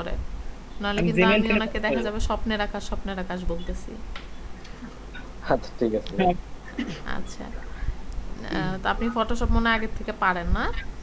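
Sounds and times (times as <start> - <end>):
person speaking over video call: 0.8 - 2.4, 5.4 - 6.4, 8.4 - 9.8.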